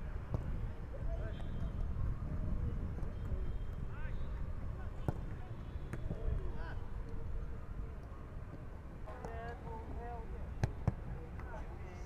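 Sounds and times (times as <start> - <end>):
footballs being struck: 0.2 - 0.6, 5.0 - 6.5, 10.6 - 11.5.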